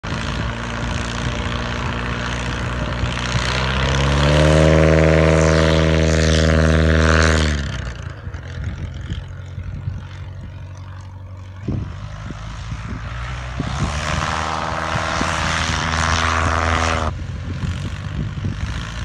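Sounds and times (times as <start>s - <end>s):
light plane engine and propeller: 0.0s - 19.0s.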